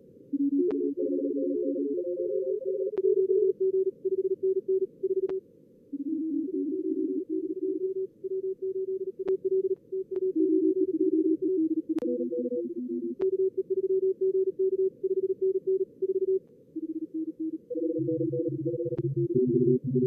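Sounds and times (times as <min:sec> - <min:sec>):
overlapping morse code signals: 0:06.1 - 0:20.0.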